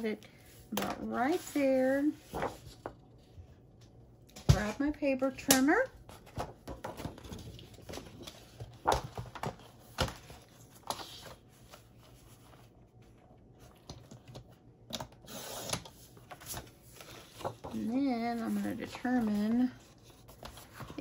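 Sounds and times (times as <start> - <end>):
paper rustle: 0.8 - 3.0, 6.1 - 14.5, 15.9 - 21.0.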